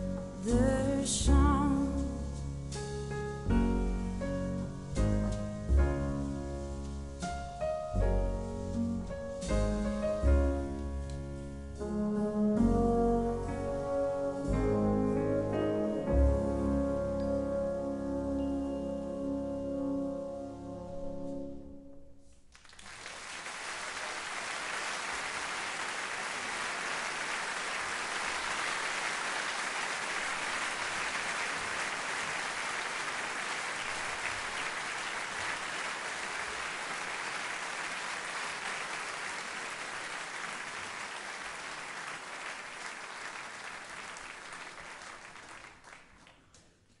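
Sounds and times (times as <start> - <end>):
audience applauding: 22.5 - 46.7.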